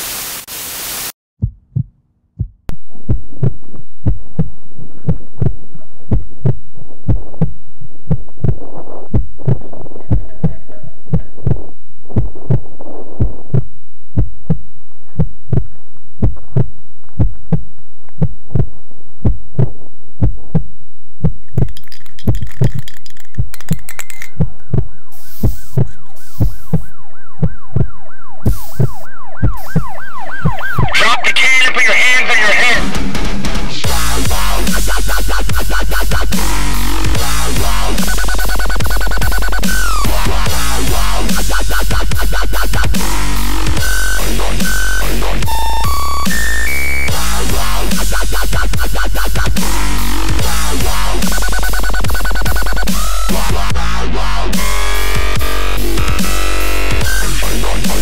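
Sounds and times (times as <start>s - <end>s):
heartbeat-like low thuds: 1.4s - 21.7s, 24.4s - 30.9s
wavering police siren: 24.8s - 31.0s.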